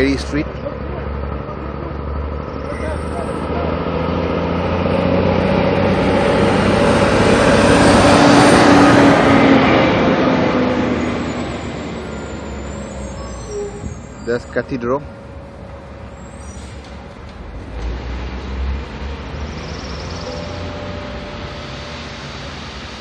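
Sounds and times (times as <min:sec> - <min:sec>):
vehicle passing on street: 0:00.0 - 0:23.0.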